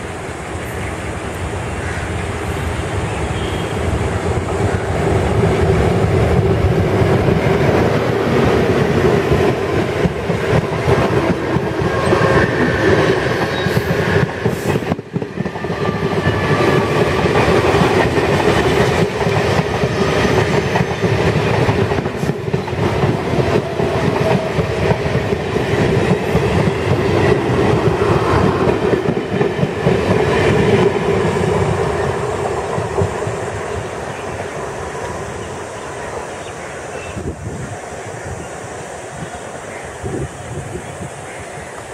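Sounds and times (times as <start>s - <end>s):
diesel locomotive engine passing: 0.0s - 41.9s.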